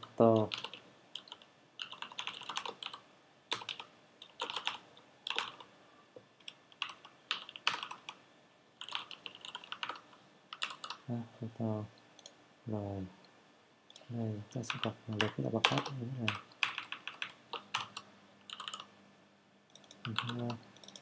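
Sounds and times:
typing on computer keyboard: 0:00.2 - 0:05.7, 0:06.4 - 0:08.2, 0:08.8 - 0:11.0, 0:14.7 - 0:18.9, 0:19.7 - 0:21.0.

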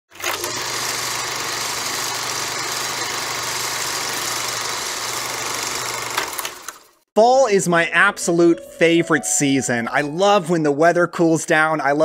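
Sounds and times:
film projector whirring: 0:00.1 - 0:07.0.

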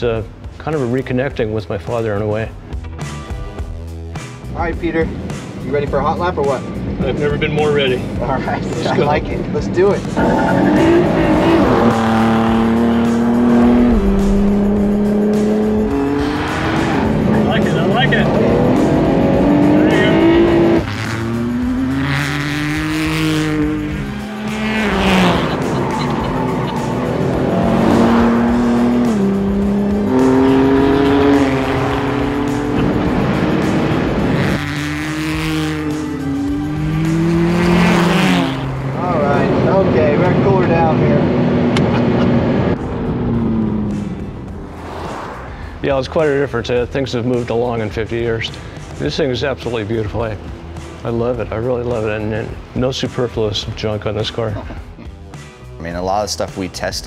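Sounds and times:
sports car engine revving: 0:09.4 - 0:45.6.

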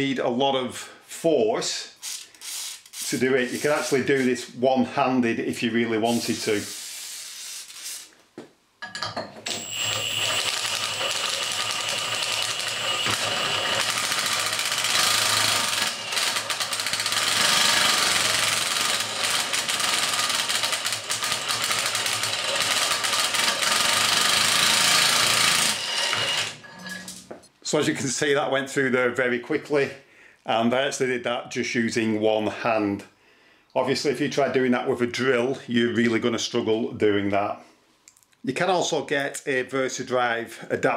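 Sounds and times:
impact wrench rattling: 0:09.9 - 0:25.8.

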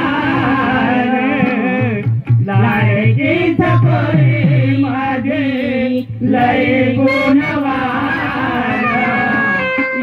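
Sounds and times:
hand drum playing: 0:06.2 - 0:10.0.

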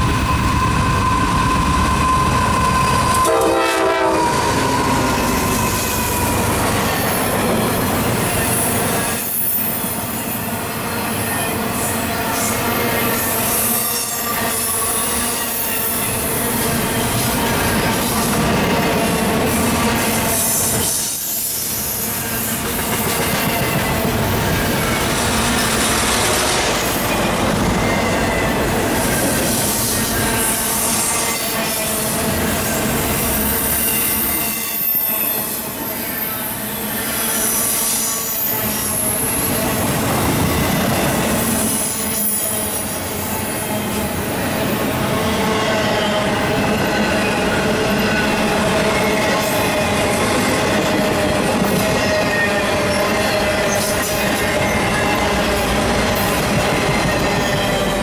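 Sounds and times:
high wheel squeal: 0:00.0 - 0:22.7, 0:23.4 - 0:43.9, 0:44.6 - 0:58.0
train wheels rumbling on rails: 0:00.0 - 0:58.0.

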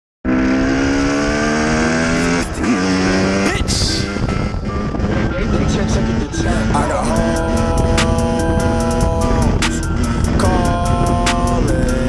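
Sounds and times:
dirt bike engine revving: 0:00.2 - 0:12.0.

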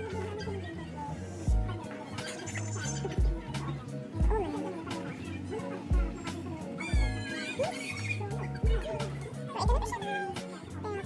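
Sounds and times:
music with drum thumps and bass: 0:01.5 - 0:01.8, 0:02.9 - 0:04.6, 0:05.9 - 0:06.4, 0:07.0 - 0:07.3, 0:08.4 - 0:10.0
high wavering cry: 0:06.8 - 0:08.6.

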